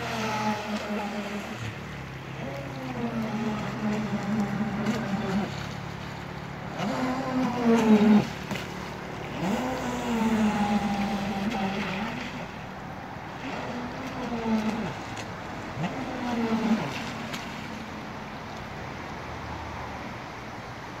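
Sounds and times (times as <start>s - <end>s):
electric motor whining: 0.0s - 5.5s, 9.2s - 12.6s.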